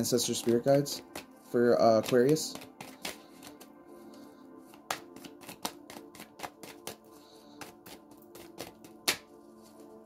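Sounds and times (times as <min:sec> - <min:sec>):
soft background music: 0:00.0 - 0:10.0
cards being shuffled: 0:00.2 - 0:10.0
card snaps: 0:02.0 - 0:03.7, 0:04.7 - 0:07.0, 0:07.6 - 0:09.3.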